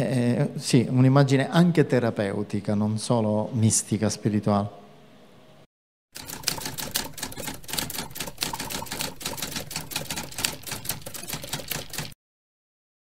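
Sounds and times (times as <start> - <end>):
typewriter keystroke clicks: 6.2 - 12.2.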